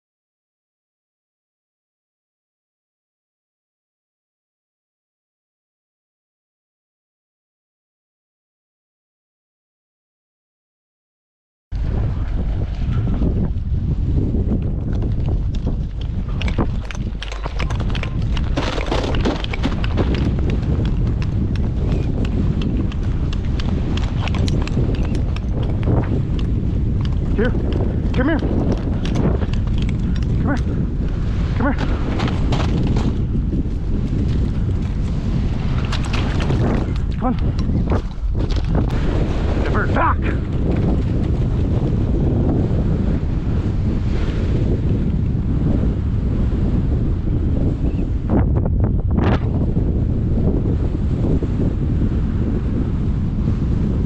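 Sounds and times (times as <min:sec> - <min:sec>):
wind buffeting microphone: 0:11.7 - 0:54.0.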